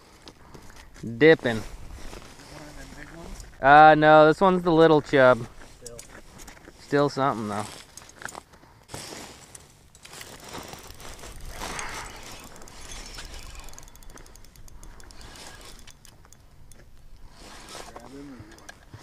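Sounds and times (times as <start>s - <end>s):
fishing reel gears ticking: 9.5s - 19.0s.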